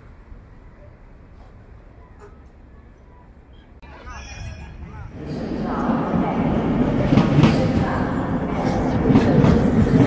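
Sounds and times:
train rumbling past: 3.8s - 10.0s.

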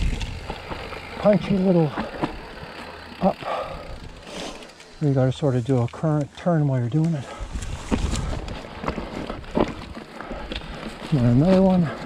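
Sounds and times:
bike knocking and rattling: 0.0s - 12.0s
bike tyres on rocky dirt trail: 0.0s - 12.0s.

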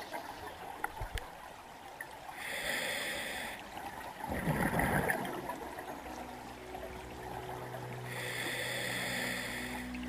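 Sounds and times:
regulator inhale hiss: 2.4s - 3.6s, 8.1s - 10.0s
gurgling exhaled bubbles: 4.1s - 5.6s.

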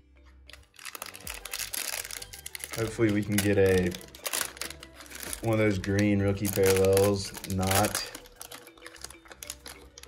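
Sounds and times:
soft background music: 0.0s - 10.0s
plastic wrapper crinkling: 0.5s - 10.0s.

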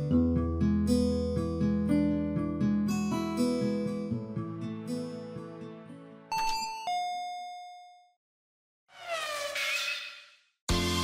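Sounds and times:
two-note doorbell chime: 6.3s - 8.2s.

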